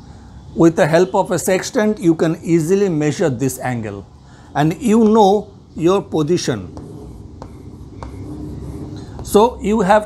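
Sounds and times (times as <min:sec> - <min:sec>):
chalk tapping: 0:04.7 - 0:10.0
chalk scratching on blackboard: 0:05.8 - 0:10.0.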